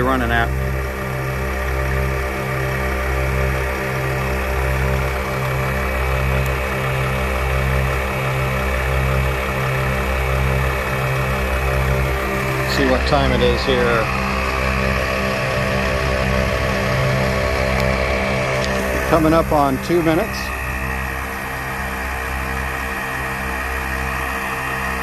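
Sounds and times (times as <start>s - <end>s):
air compressor humming: 0.0s - 25.0s.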